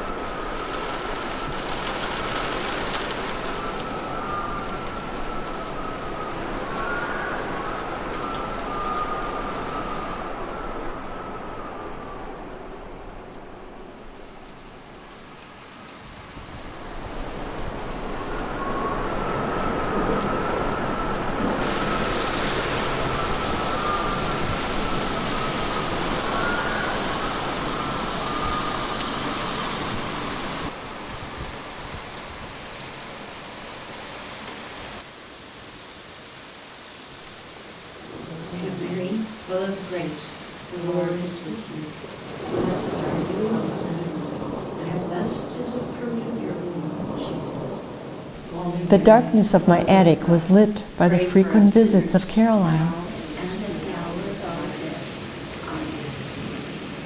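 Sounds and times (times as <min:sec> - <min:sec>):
steady rain: 0:00.0 - 0:57.0
thin wavering whistle: 0:03.3 - 0:12.4, 0:18.2 - 0:30.0.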